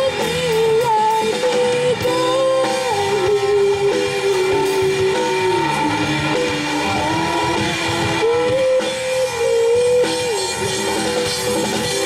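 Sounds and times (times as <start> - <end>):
young singers: 0.0 - 11.2
hard rock band playing: 0.0 - 12.0.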